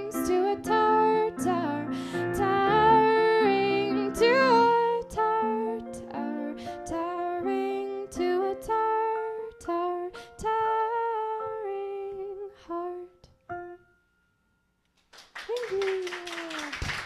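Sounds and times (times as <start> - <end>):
piano playing: 0.0 - 14.9.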